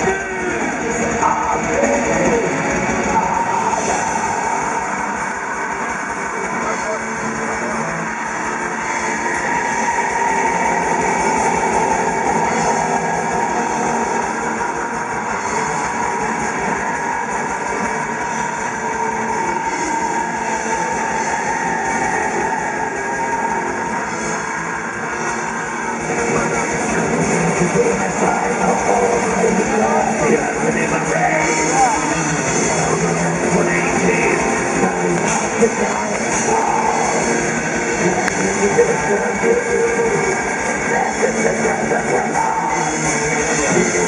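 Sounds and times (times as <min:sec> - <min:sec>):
distorted electric guitars: 0:00.0 - 0:44.0
vocalist singing: 0:00.0 - 0:44.0.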